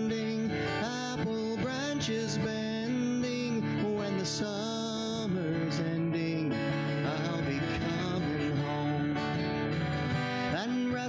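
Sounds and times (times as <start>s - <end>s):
man singing slow song: 0.0s - 9.6s, 10.2s - 11.0s
acoustic guitar: 0.0s - 11.0s.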